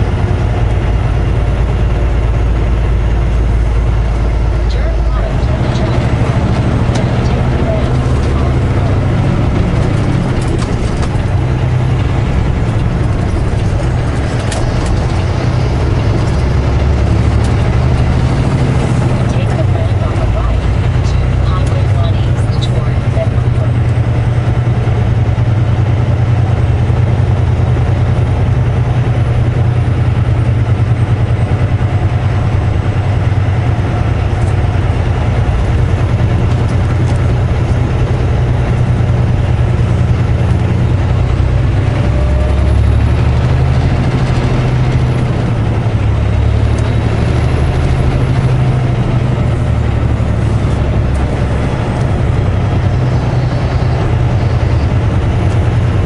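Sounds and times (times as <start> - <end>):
diesel truck engine drone: 0.0 - 56.0
road noise: 0.0 - 56.0.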